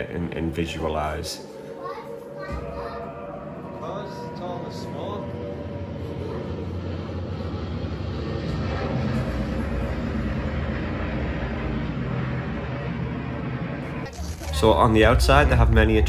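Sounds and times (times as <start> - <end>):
warplane engines droning: 0.0 - 16.0.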